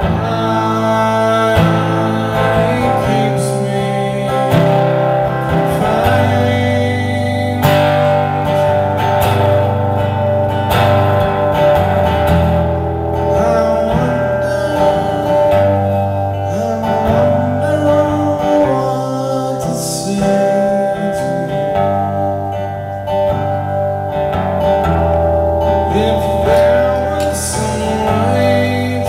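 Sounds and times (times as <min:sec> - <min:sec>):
man singing into microphone: 0:00.0 - 0:08.9, 0:13.2 - 0:22.9, 0:25.8 - 0:29.0
guitar ringing chords: 0:00.0 - 0:29.0.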